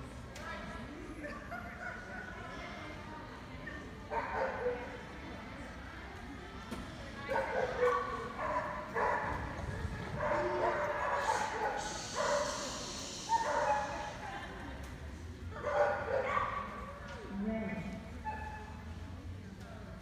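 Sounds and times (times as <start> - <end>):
dog barking: 7.3 - 9.4, 10.2 - 12.7, 13.3 - 14.2, 15.6 - 16.8.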